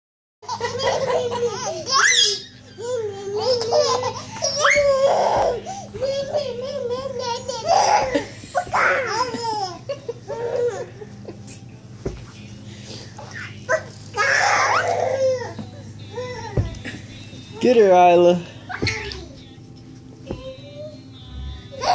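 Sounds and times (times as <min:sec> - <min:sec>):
baby laughing: 0:00.4 - 0:11.0, 0:13.2 - 0:17.1, 0:18.7 - 0:19.4.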